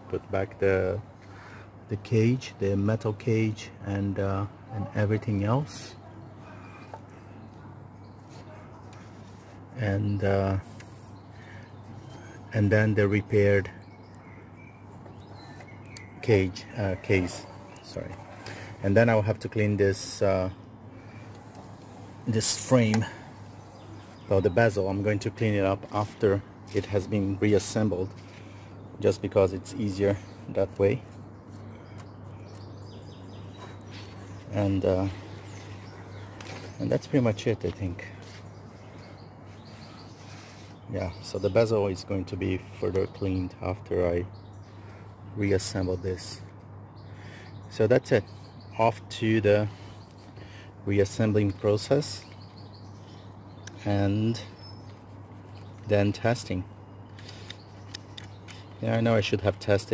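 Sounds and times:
faint bird chirps: 0:13.2 - 0:25.2
faint creaks and clicks: 0:57.1 - 0:58.8.

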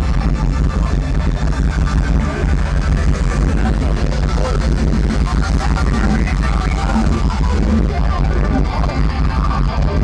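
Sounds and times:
live hard rock band: 0:00.0 - 0:10.0.

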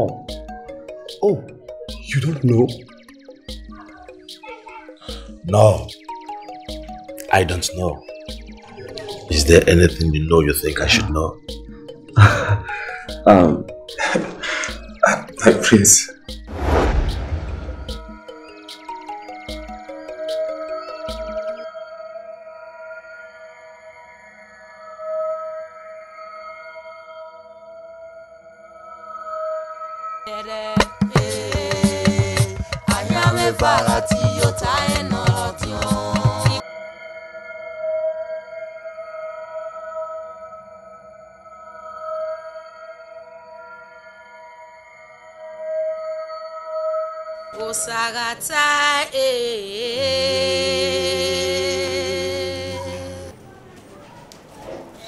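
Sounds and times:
synth drone film music: 0:00.0 - 0:16.5, 0:17.5 - 0:30.6, 0:32.2 - 0:48.1, 0:49.9 - 0:53.4
person singing or chanting: 0:30.3 - 0:36.6, 0:49.1 - 0:53.4.

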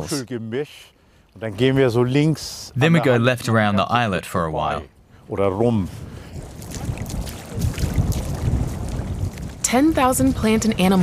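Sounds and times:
wind buffeting microphone: 0:05.1 - 0:11.0
feet splashing through water: 0:06.3 - 0:09.8.

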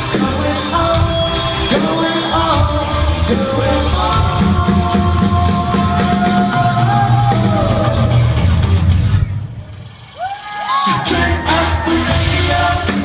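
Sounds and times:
person singing: 0:00.0 - 0:08.6, 0:10.6 - 0:13.0
live rock band playing: 0:00.0 - 0:13.0.

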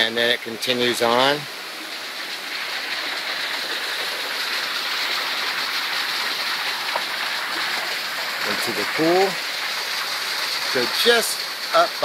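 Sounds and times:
creek water running over rocks: 0:00.0 - 0:12.0.

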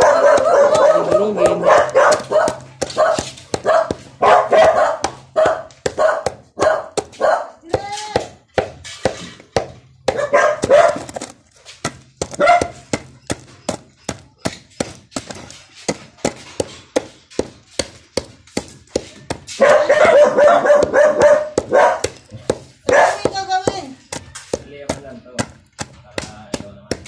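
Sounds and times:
dog barking: 0:00.0 - 0:07.6, 0:10.1 - 0:11.2, 0:12.4 - 0:12.8, 0:19.6 - 0:22.2, 0:22.8 - 0:23.4
pestle pounding in mortar: 0:00.0 - 0:27.0.

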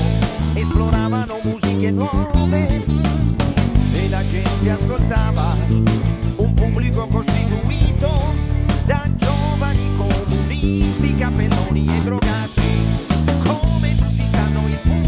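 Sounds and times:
wavering melody line: 0:00.0 - 0:03.2
electric bass line: 0:00.0 - 0:15.0.

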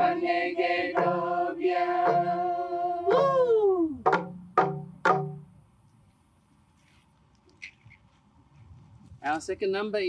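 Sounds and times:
group singing short note: 0:00.0 - 0:03.5.

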